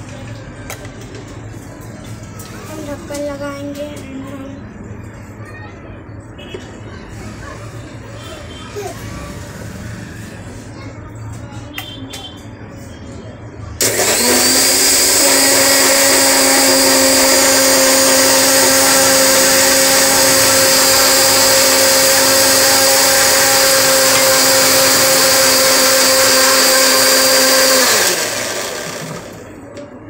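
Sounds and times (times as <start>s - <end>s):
mixer grinder motor running: 13.8s - 29.6s.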